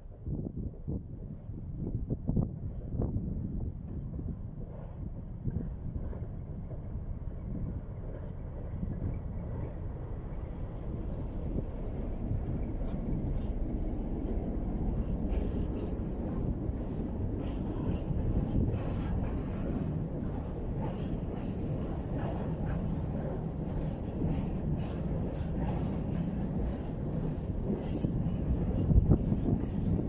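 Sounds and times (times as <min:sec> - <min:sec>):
diesel locomotive engine rumble: 0:00.0 - 0:30.0
wind buffeting microphone: 0:00.0 - 0:30.0
train wagons rolling by: 0:03.8 - 0:30.0.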